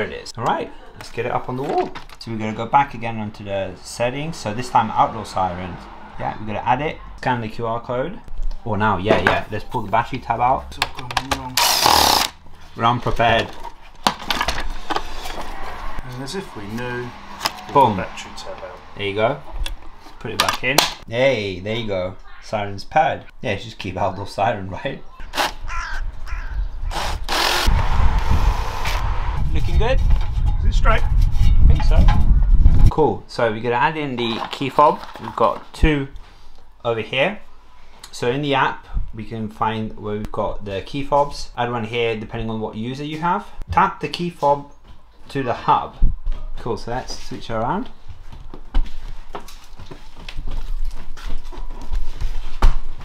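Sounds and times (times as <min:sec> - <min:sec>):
low rumble: 0:03.8 - 0:08.7, 0:15.2 - 0:20.3, 0:27.6 - 0:32.9
cordless drill whining: 0:11.6 - 0:12.4, 0:26.9 - 0:27.7
footsteps on hard floor: 0:48.0 - 0:53.0.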